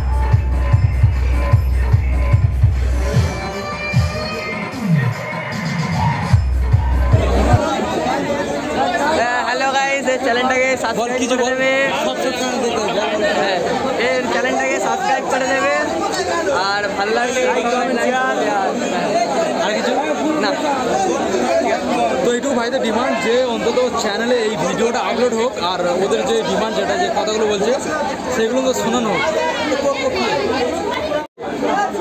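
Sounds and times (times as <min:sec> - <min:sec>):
bass-heavy music with beat: 0:00.0 - 0:07.6
young men chattering: 0:07.0 - 0:32.0.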